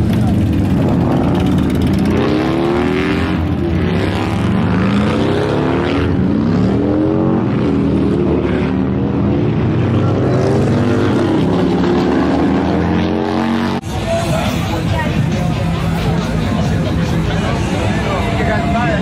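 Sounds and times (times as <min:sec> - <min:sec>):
motorcycle engines revving: 0:00.0 - 0:19.0.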